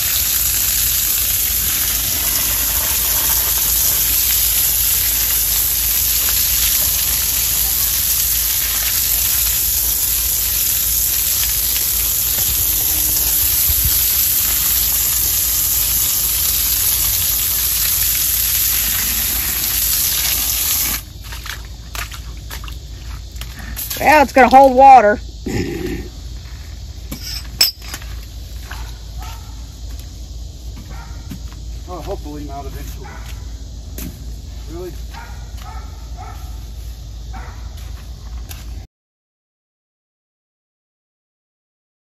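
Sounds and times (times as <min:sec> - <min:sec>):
hose spraying water on stone: 0:00.0 - 0:25.2, 0:26.8 - 0:33.4, 0:34.0 - 0:38.9.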